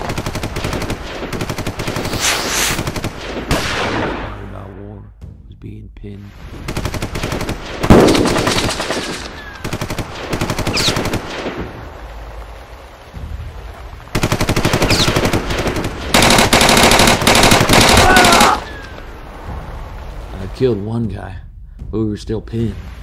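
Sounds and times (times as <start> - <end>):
machine-gun fire: 6.7 - 11.6, 14.1 - 18.6.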